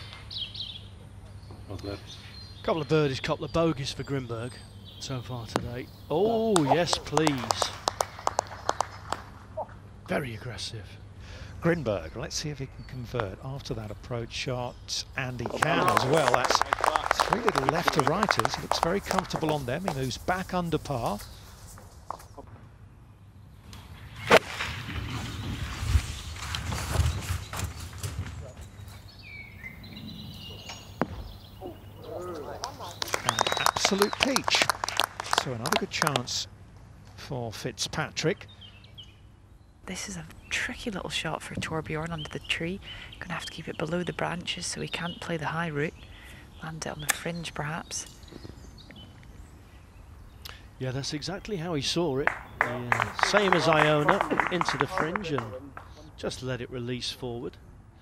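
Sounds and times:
faint outdoor background: 0.0s - 58.0s
faint bird chirps: 28.4s - 33.9s.

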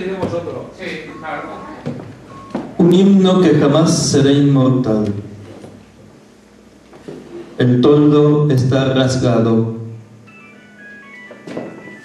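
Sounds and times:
mobile phone ringtone: 10.2s - 12.0s.

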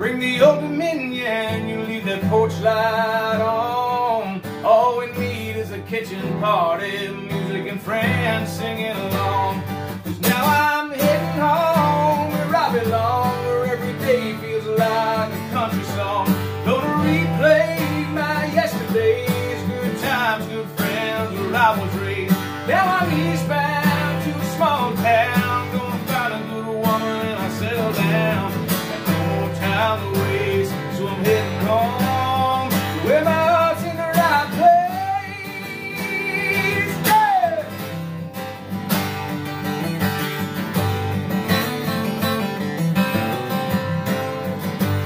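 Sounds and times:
man singing: 0.0s - 38.4s
acoustic guitar strumming: 0.0s - 45.0s.

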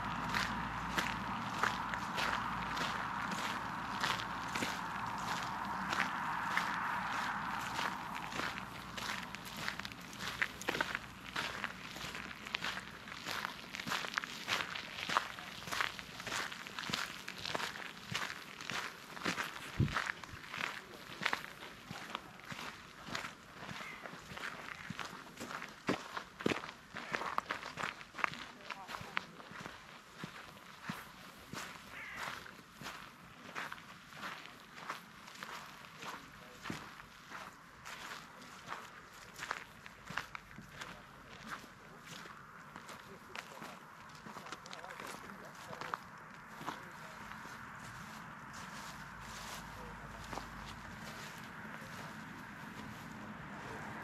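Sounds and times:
footsteps on frosted grass: 0.0s - 54.0s
footsteps on gravel and leaves: 0.0s - 54.0s
rushing sound: 0.1s - 10.0s.

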